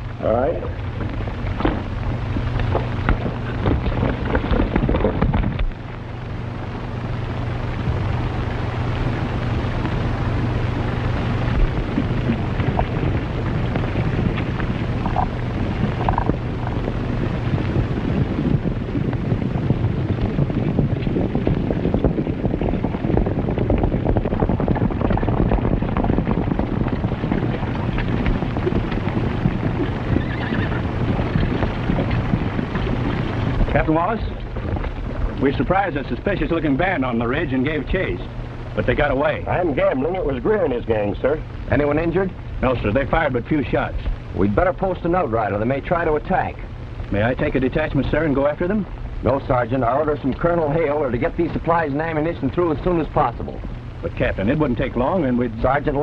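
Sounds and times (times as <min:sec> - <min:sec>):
horses galloping: 0:00.0 - 0:56.0
horse whinnying: 0:30.0 - 0:31.5.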